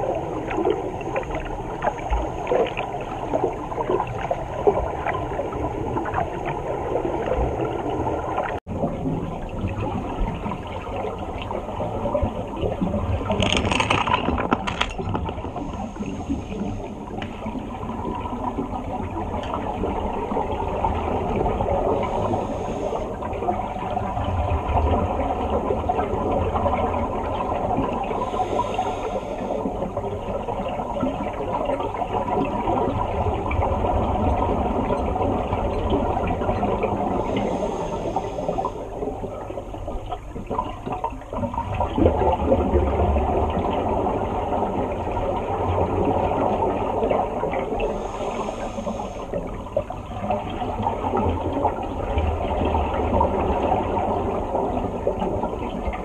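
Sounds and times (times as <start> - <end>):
scuba exhaust bubbles: 0.0 - 56.0
underwater rumble and wash: 0.0 - 56.0.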